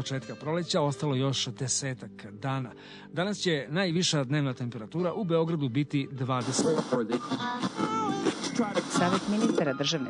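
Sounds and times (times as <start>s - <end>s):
radio jingle with singing: 6.4s - 10.0s.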